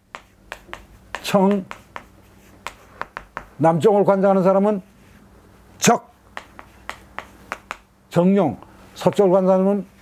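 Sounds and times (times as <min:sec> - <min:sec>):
chalk tapping on chalkboard: 0:00.0 - 0:03.7, 0:06.3 - 0:07.9, 0:08.6 - 0:09.4.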